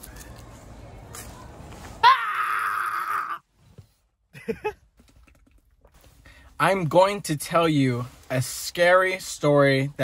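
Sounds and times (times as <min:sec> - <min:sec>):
high-pitched scream: 0:02.0 - 0:03.4.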